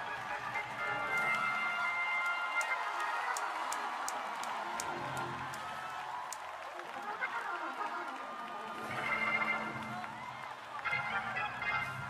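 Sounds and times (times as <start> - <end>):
sharp evenly spaced clicks: 2.2 - 6.7.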